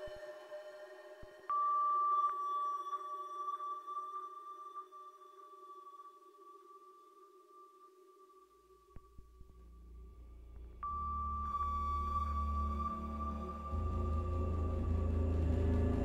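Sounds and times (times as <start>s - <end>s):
low drone hum: 9.2s - 16.0s.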